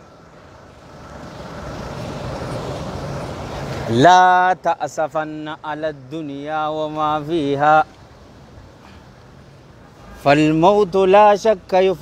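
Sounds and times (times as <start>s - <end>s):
passing vehicle engine: 0.0s - 9.7s
road noise: 0.0s - 12.0s.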